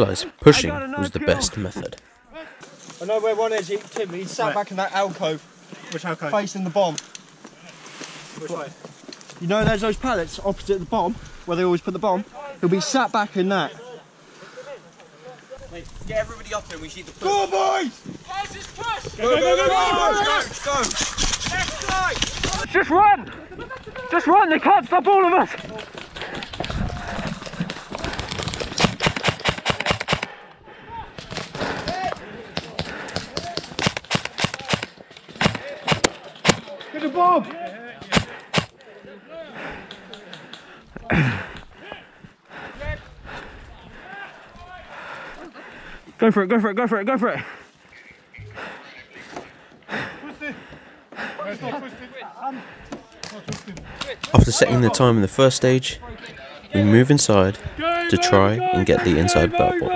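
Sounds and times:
distant men calling out: 0.0s - 2.0s, 56.6s - 59.9s
running footsteps: 25.4s - 30.3s
sharp clicks: 28.3s - 30.3s, 38.1s - 38.7s
airsoft guns firing: 28.7s - 30.3s, 32.7s - 36.6s, 38.1s - 38.7s.

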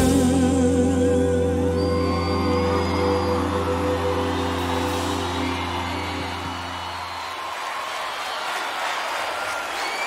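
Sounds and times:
large crowd cheering: 1.8s - 10.0s.

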